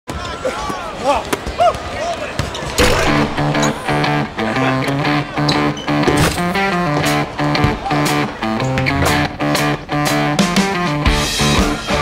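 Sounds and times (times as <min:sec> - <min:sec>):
players shouting: 0:00.1 - 0:08.9
shoe squeaks: 0:02.4 - 0:04.0
plucked guitar music: 0:03.1 - 0:12.0.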